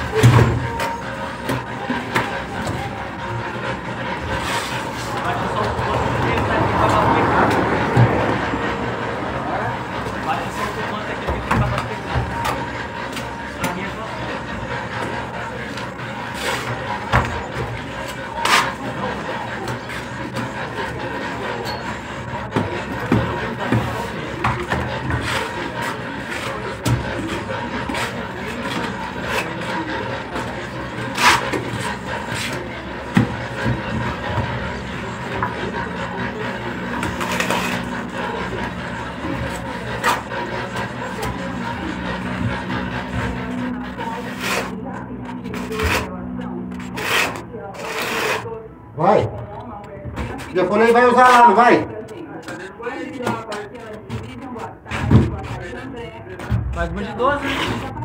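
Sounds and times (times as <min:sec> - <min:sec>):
indistinct background voices: 0:00.0 - 0:58.0
steady background noise: 0:00.0 - 0:58.0.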